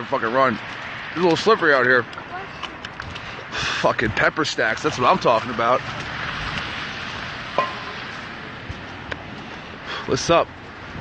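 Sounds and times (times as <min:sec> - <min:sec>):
street noise hiss: 0:00.0 - 0:11.0.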